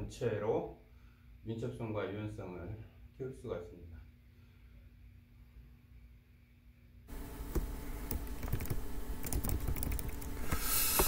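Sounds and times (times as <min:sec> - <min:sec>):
computer keyboard clicking: 0:07.5 - 0:10.4.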